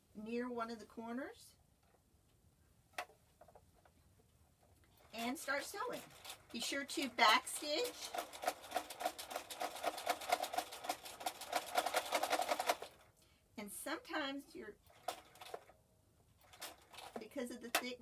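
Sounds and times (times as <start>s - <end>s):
sewing machine stitching: 5.0s - 13.0s, 14.8s - 15.7s, 16.4s - 18.0s.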